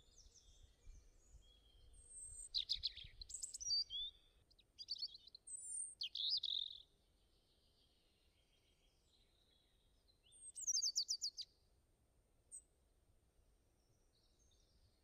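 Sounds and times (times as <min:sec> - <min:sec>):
songbird chirps and trills: 0:00.0 - 0:11.6.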